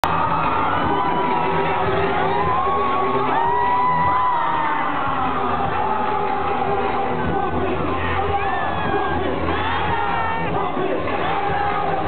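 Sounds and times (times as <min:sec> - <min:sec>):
crowd cheering and whooping: 0:00.0 - 0:12.0
deep bass music: 0:00.0 - 0:12.0.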